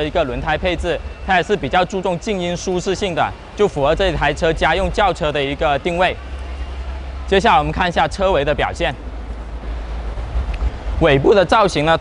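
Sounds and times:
low rumble: 3.9s - 12.0s.

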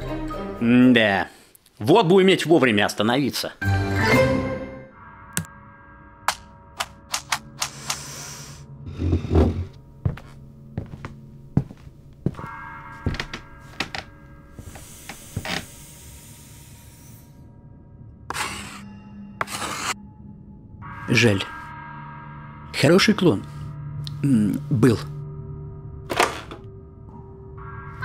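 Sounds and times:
soft background music: 0.0s - 28.0s.

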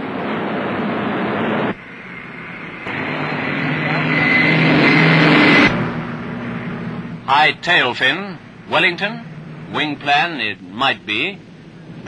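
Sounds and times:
high whine: 0.0s - 12.0s
piston aircraft engines droning: 0.0s - 12.0s.

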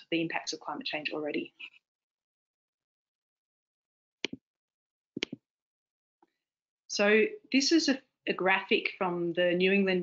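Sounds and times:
mouse clicks: 5.2s - 5.4s.

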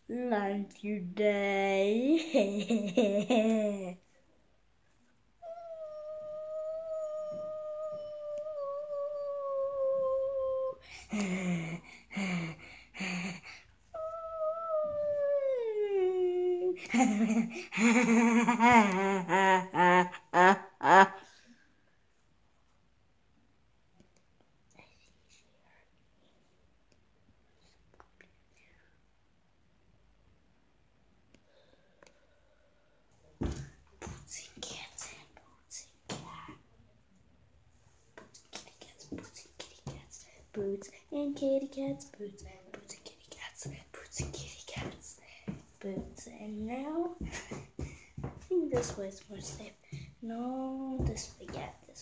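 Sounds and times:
boy making silly wordless noises: 0.1s - 4.0s, 5.4s - 21.3s, 40.6s - 42.9s, 48.5s - 52.0s
boy yelping: 5.4s - 10.8s
boy whispering: 5.4s - 17.7s, 24.7s - 26.5s, 27.5s - 29.1s, 34.2s - 36.8s, 38.2s - 47.7s, 48.5s - 52.0s.

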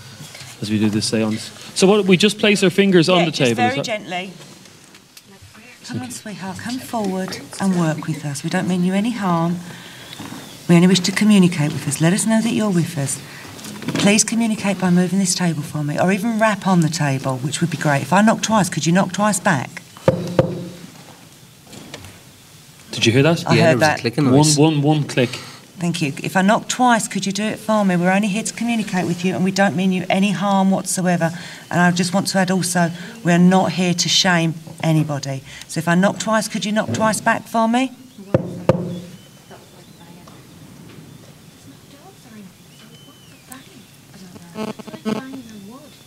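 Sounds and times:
knocks on a table: 20.1s - 20.8s, 38.3s - 39.1s.

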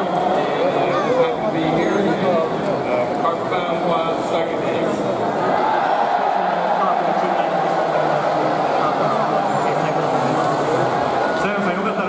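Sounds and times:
man speaking over public address: 0.0s - 5.3s, 6.2s - 12.0s.

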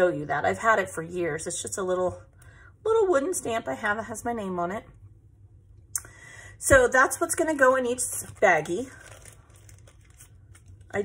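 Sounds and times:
plastic bag crinkling: 7.1s - 11.0s.

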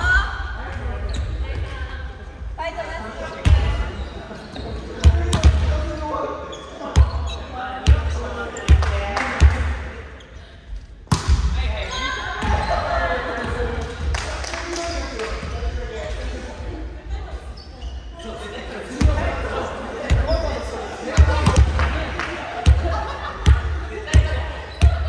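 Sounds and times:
volleyball smacks echoing: 11.0s - 11.7s, 21.1s - 25.0s.

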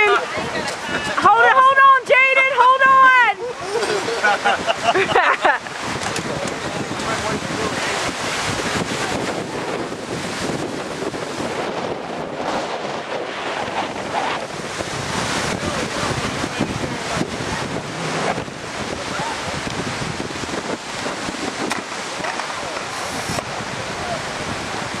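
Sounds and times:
lake waves washing on shore: 0.0s - 25.0s
wind blowing across microphone: 0.0s - 25.0s.

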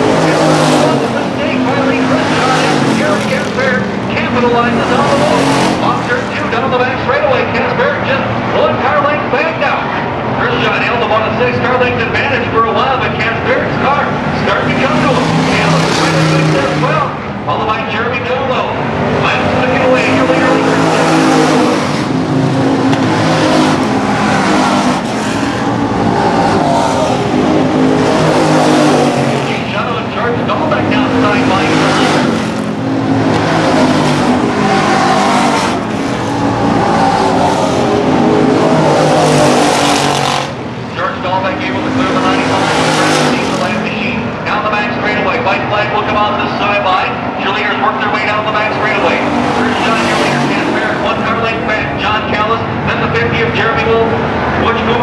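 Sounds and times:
race car engines roaring: 0.0s - 55.0s.

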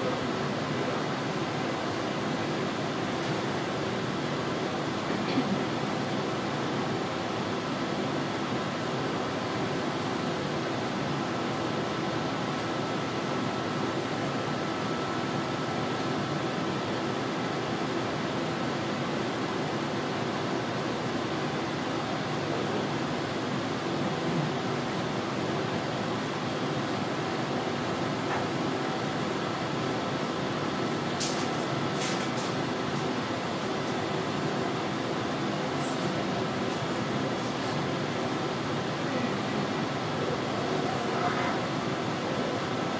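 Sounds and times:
fan whirring hiss: 0.0s - 42.9s.

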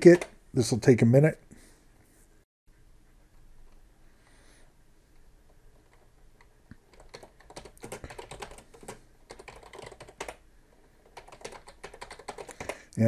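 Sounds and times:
typing on computer keyboard: 5.8s - 12.9s.

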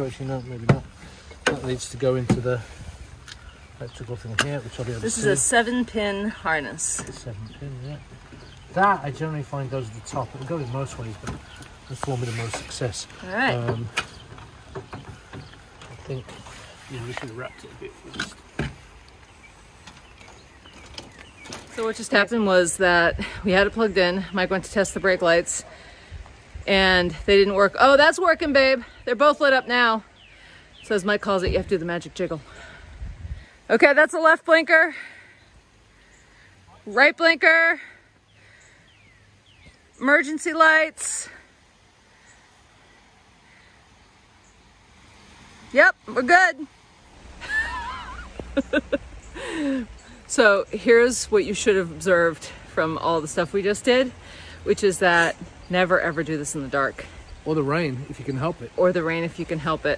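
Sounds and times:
light rain hiss: 0.0s - 59.9s
person laughing: 47.4s - 49.9s.

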